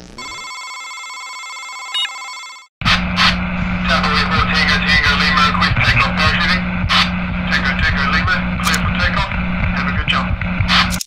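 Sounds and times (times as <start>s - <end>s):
garbled voices: 2.8s - 11.0s
noisy hum: 2.8s - 11.0s
scattered clicks: 8.6s - 9.0s.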